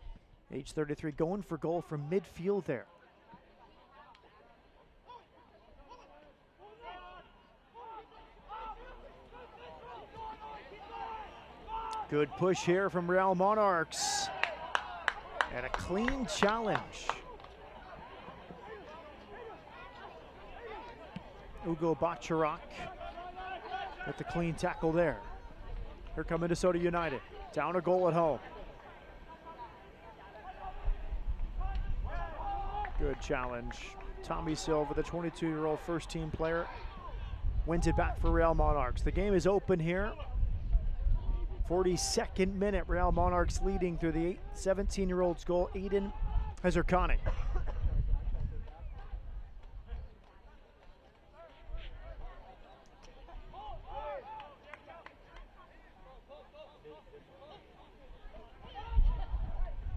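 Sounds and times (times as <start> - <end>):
players calling out faintly: 1.3 - 37.2.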